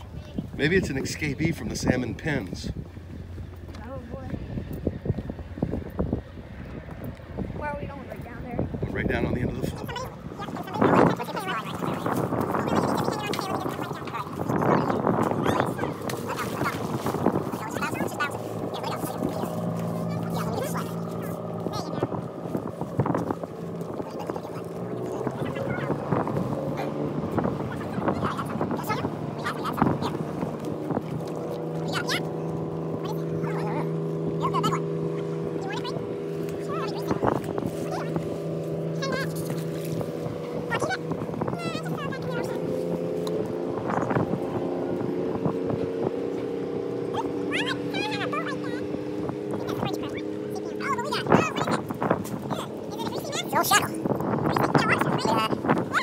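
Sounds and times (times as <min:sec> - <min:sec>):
motorboat engine running: 0:00.0 - 0:56.0.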